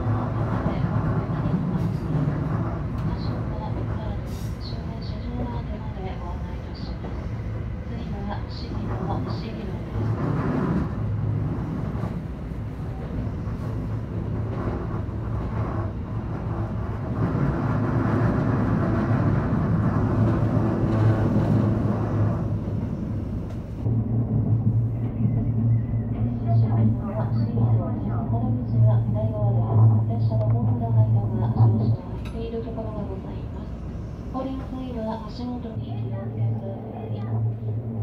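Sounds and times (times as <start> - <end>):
train wheels on rail: 0.0 - 27.1.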